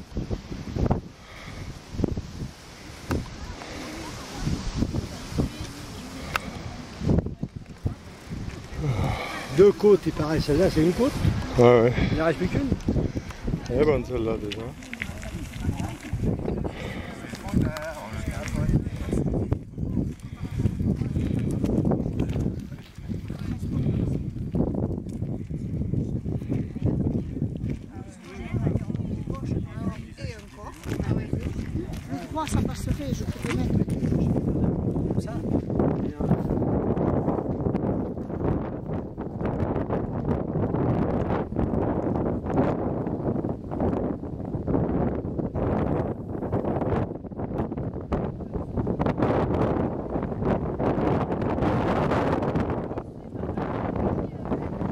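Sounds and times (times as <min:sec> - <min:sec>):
wind rumbling on microphone: 0:00.0 - 0:54.9
footsteps on gravel: 0:07.4 - 0:36.6.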